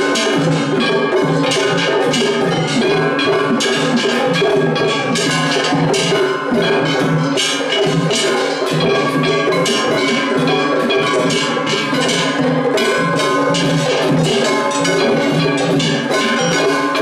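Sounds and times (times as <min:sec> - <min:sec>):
hand gongs clanging: 0:00.0 - 0:17.0
taiko drums beating: 0:00.0 - 0:17.0.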